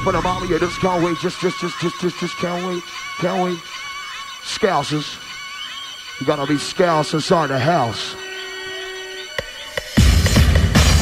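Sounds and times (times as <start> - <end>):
sparse quiet dance music: 0.0 - 11.0
held synth tone: 7.6 - 9.8.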